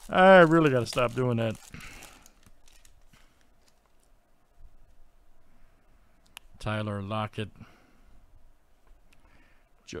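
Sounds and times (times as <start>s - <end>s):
foil pack rustling: 0.0s - 4.1s.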